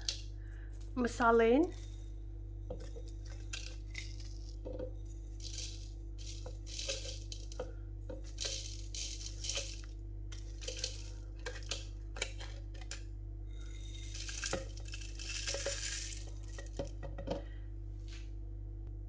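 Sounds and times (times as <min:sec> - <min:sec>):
steady low hum: 0:00.0 - 0:19.0
spices rattling into plastic cup: 0:02.7 - 0:17.2.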